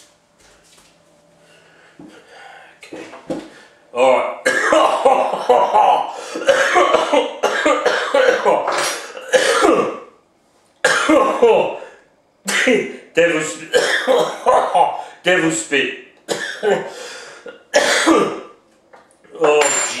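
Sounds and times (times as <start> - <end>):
man coughing: 4.4 - 10.1, 10.8 - 11.8, 12.5 - 13.0, 13.7 - 15.0, 16.3 - 18.5.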